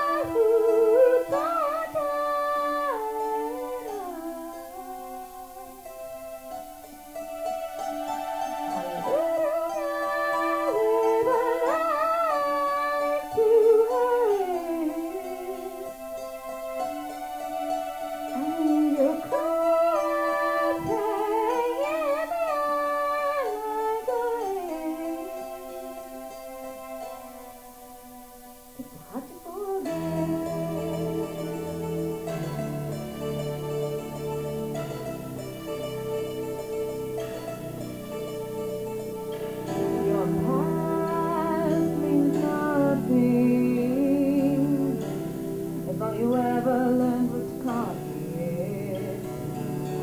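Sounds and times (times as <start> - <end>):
woman singing: 0.0 - 6.0, 8.7 - 16.0, 18.3 - 26.0, 28.8 - 33.0, 39.7 - 50.0
piano chords: 0.0 - 50.0
woman singing pop ballad: 40.0 - 45.2, 45.9 - 49.4.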